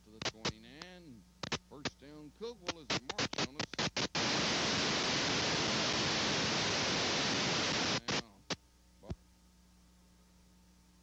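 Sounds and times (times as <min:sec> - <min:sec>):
crackling clicks: 0:00.0 - 0:05.6, 0:07.6 - 0:09.2
static hiss: 0:00.0 - 0:11.0.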